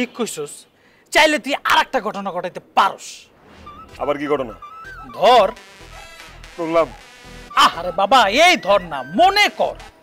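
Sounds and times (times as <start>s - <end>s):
background music: 3.2s - 10.0s.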